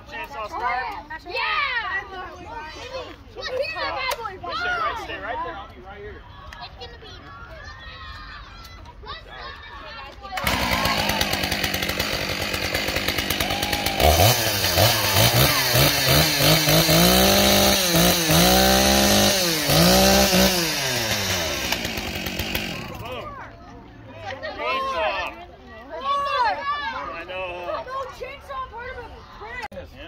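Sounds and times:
gas chainsaw revving: 0:10.4 - 0:23.2.

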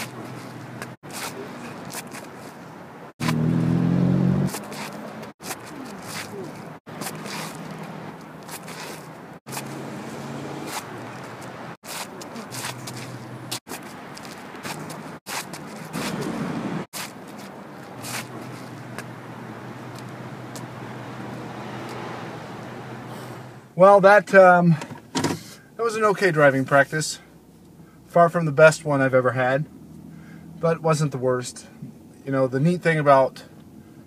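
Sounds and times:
sneakers scuffing on asphalt: 0:04.5 - 0:06.3, 0:06.9 - 0:20.8.

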